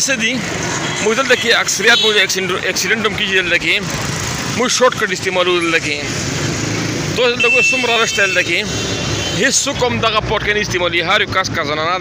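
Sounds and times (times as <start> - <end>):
people talking: 0.0 - 0.4, 1.0 - 4.0, 4.6 - 6.2, 7.2 - 8.8, 9.4 - 12.0
street traffic: 0.0 - 12.0.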